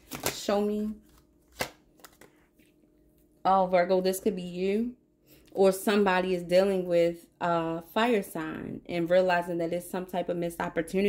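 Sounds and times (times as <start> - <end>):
card snap: 0.0 - 0.5, 1.5 - 2.3.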